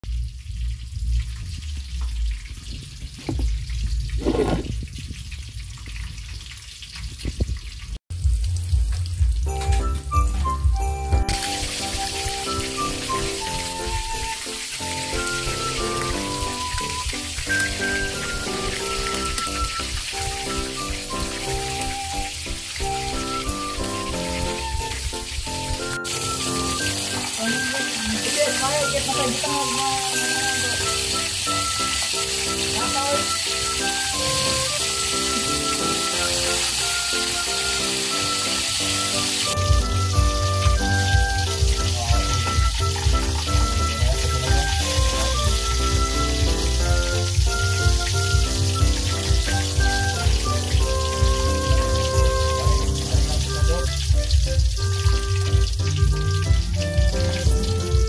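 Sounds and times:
low rumble: 0.0 - 11.1
chicken frying in hot oil: 0.0 - 58.0
soft knocks: 3.2 - 3.6
background music with stepping melody: 8.2 - 58.0.

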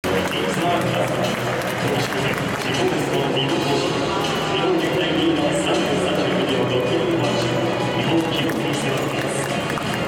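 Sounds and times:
stadium crowd hubbub: 0.0 - 10.0.

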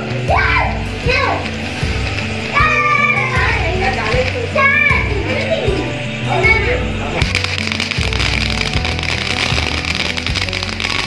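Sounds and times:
background music with steady beat: 0.0 - 11.0
children calling out excitedly: 2.4 - 6.9.

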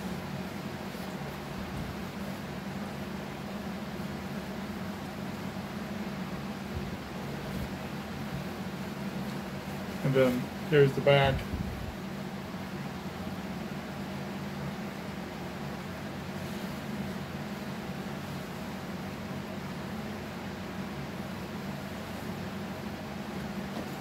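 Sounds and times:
room ventilation hum: 0.0 - 24.0.

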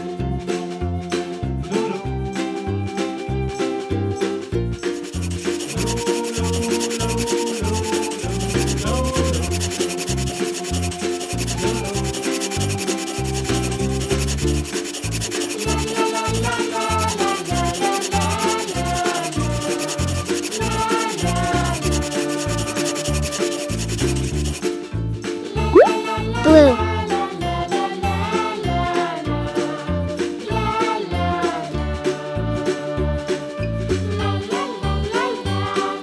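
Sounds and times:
background music: 0.0 - 27.4
marker scratching on paper: 5.0 - 24.6.

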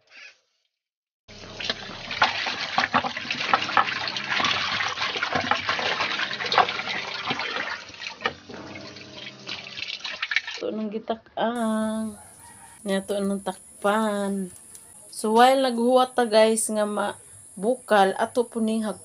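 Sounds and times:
water pouring into metal wok: 1.4 - 10.6.

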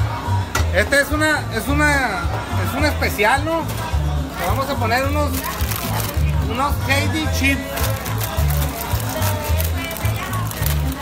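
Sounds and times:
music with steady bass beat: 0.0 - 11.0.

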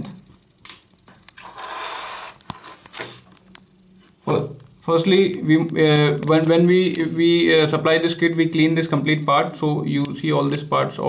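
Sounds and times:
short sharp hiss: 1.4 - 3.3.

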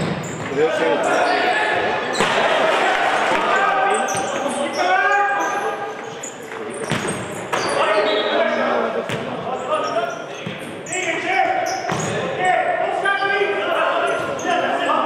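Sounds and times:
players shouting: 0.4 - 6.0.

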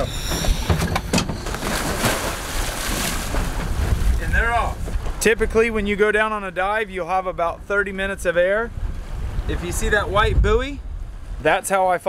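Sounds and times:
water splashing: 0.0 - 5.2
wind noise on microphone: 0.0 - 11.6.

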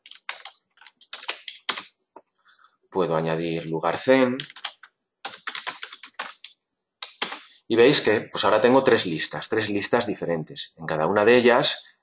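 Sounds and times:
typing on keyboard: 0.0 - 2.0, 3.6 - 7.5.

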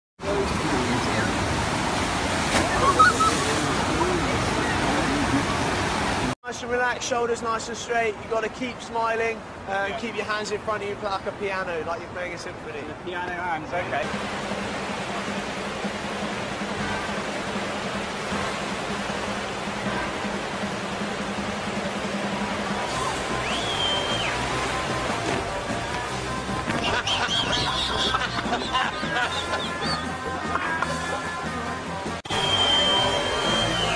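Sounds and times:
rushing water on a wave machine: 0.2 - 6.4, 13.9 - 28.7, 32.3 - 33.9
whistle-like tone: 2.7 - 3.4, 23.4 - 24.4, 32.3 - 33.9
laughter: 2.8 - 3.5, 26.8 - 31.3.

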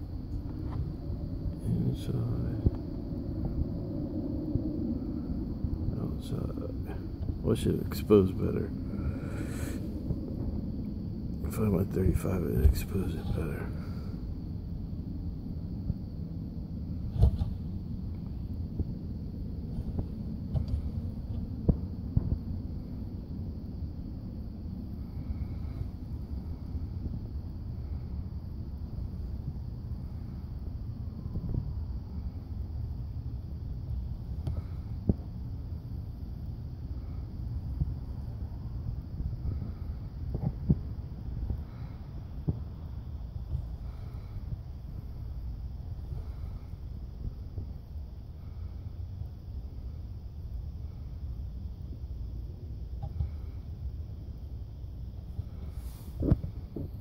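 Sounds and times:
low outdoor background rumble: 0.0 - 57.0.

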